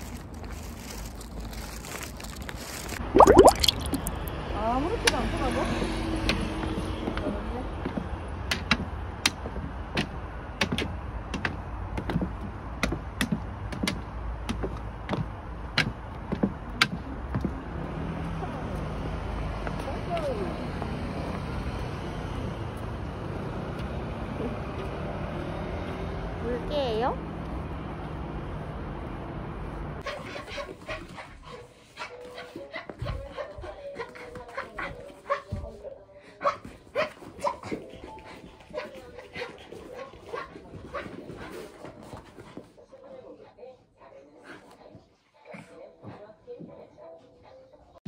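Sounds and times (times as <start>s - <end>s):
road traffic passing: 4.1s - 30.0s.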